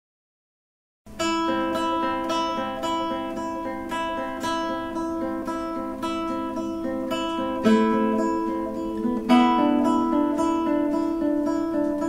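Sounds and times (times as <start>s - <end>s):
fingerpicked classical guitar: 1.1s - 12.0s.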